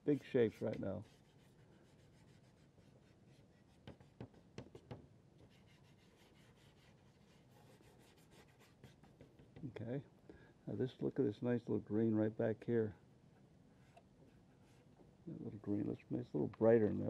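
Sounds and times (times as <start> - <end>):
pastel stick scratching on paper: 0.0 - 9.5.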